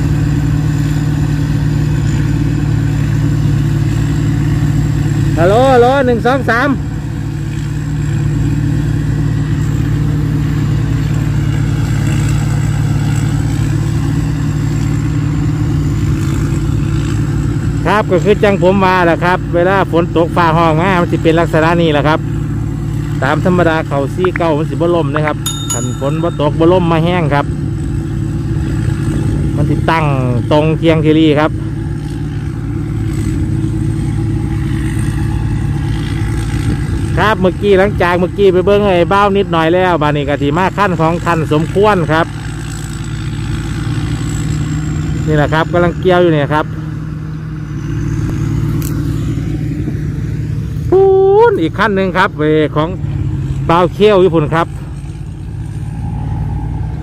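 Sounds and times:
combine harvester engine droning: 0.0s - 57.0s.

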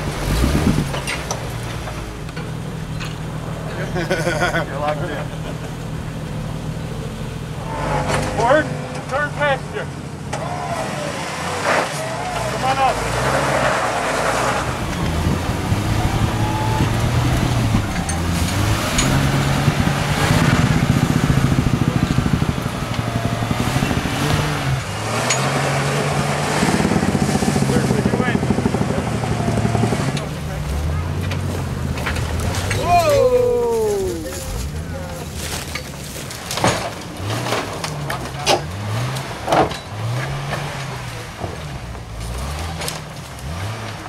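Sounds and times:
car engine revving: 0.0s - 33.6s, 34.2s - 44.0s
people talking: 3.7s - 5.7s, 7.9s - 13.4s, 27.5s - 31.5s, 32.6s - 35.8s.

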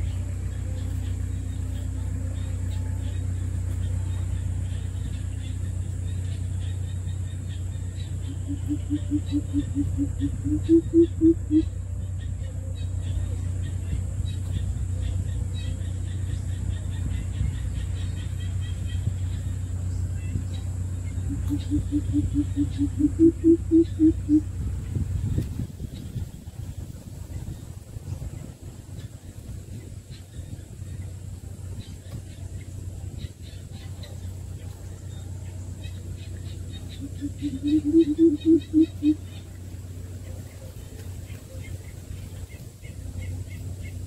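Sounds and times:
small birds chirping: 0.0s - 44.0s
steady low rumble: 0.0s - 44.0s
coucal deep hooting call: 8.3s - 11.7s, 21.3s - 24.5s, 37.0s - 39.2s.

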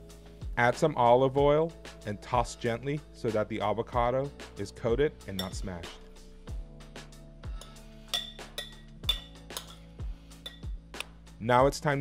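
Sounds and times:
soft slow background music: 0.0s - 12.0s
metal spoon clinking glass bowl: 5.3s - 5.8s, 7.6s - 10.8s.

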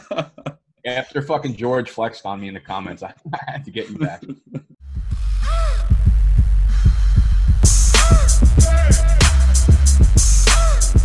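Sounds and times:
hip-hop beat with heavy bass: 3.8s - 11.0s.

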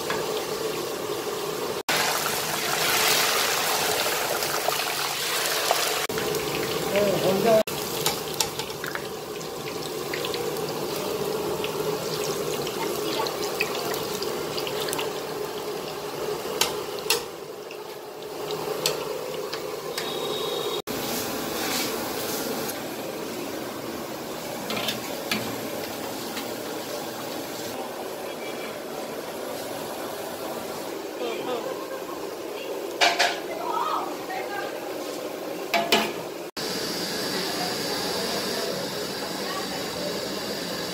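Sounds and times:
batter sizzling in hot oil: 0.0s - 28.1s, 35.1s - 40.9s.

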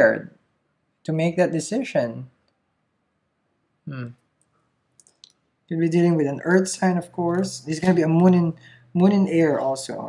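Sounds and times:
man saying hmm: 3.9s - 4.2s.

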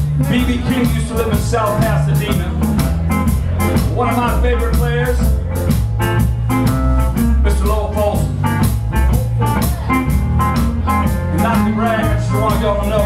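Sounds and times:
drums with steady beat: 0.0s - 13.0s
electric guitar: 0.0s - 13.0s
person singing: 10.8s - 13.0s.

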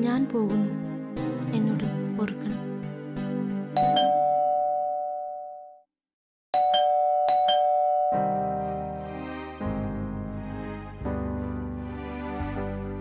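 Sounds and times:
background music: 0.0s - 4.6s, 8.1s - 13.0s
electronic doorbell chime: 3.8s - 5.8s, 6.6s - 9.2s.

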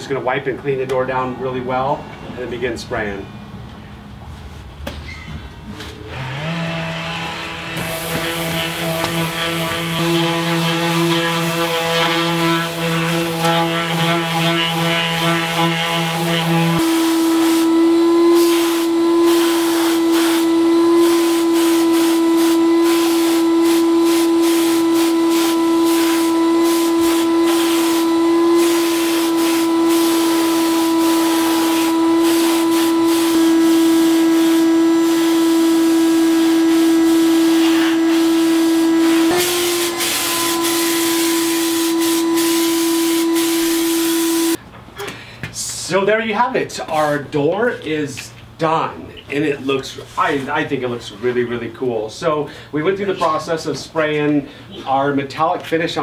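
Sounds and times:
paint sprayer whining: 5.8s - 44.6s
electric sander running: 6.1s - 44.6s
spray gun hissing: 7.8s - 15.0s, 16.1s - 44.6s.

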